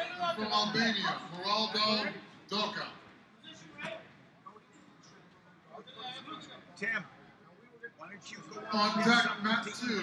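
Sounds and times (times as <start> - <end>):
murmur of voices in hall: 0.0 - 10.0.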